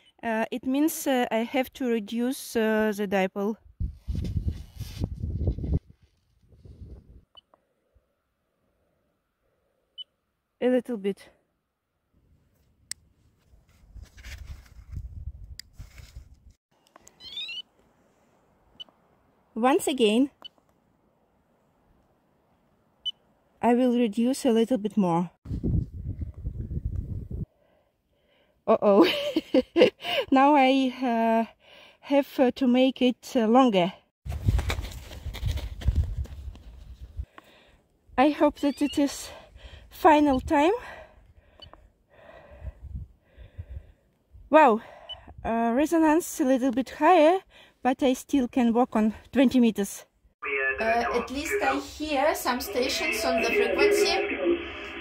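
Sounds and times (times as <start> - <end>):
handling noise and rustling: 34.3 - 37.2
faint breathing: 37.2 - 37.9, 39.3 - 40.0, 40.8 - 44.1.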